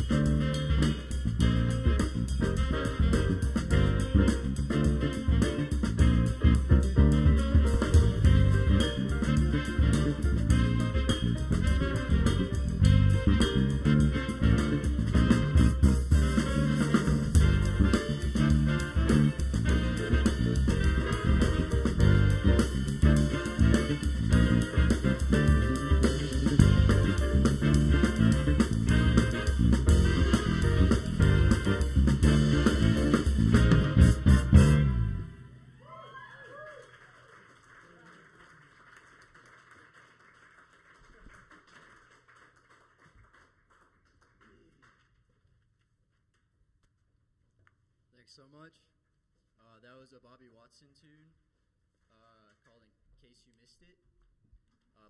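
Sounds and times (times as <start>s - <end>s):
jazz ensemble playing: 0.0s - 35.6s.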